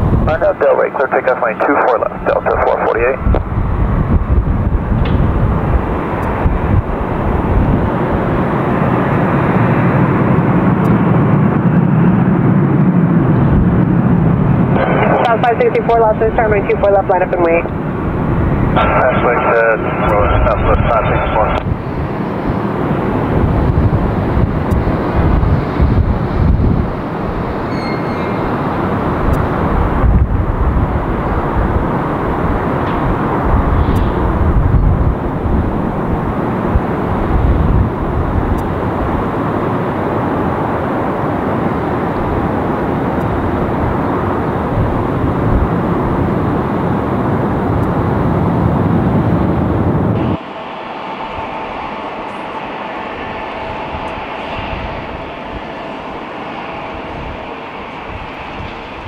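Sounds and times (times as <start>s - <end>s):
jet engine whine: 0.0s - 59.0s
jet engines rumbling at takeoff: 0.0s - 59.0s.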